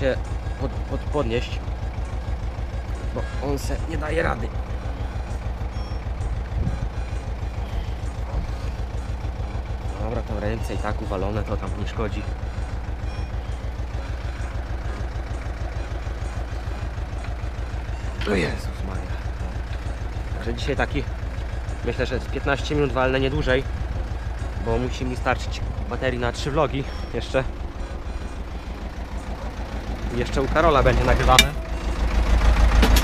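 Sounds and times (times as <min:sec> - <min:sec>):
tractor engine idling: 0:00.0 - 0:33.0.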